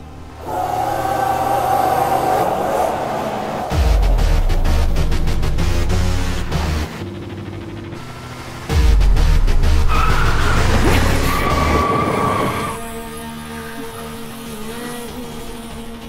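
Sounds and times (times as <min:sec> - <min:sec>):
low engine rush: 0:00.0 - 0:14.4
high tyre squeal: 0:00.2 - 0:04.2, 0:09.8 - 0:14.1
action film music: 0:01.5 - 0:12.9.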